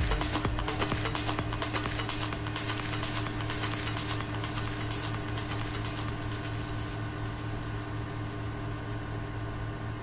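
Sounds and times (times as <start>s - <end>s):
electronic trance music: 0.0s - 9.2s.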